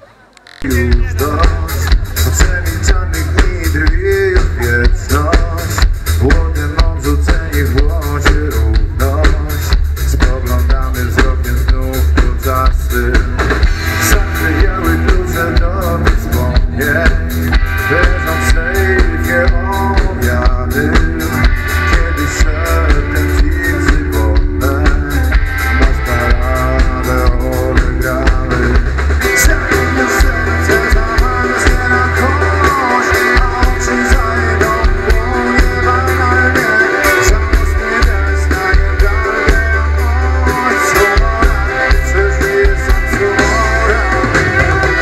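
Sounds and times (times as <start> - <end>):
guitar: 0.1 - 45.0
live band playing loudly: 0.4 - 45.0
drum kit: 0.6 - 45.0
heavy bass: 0.6 - 45.0.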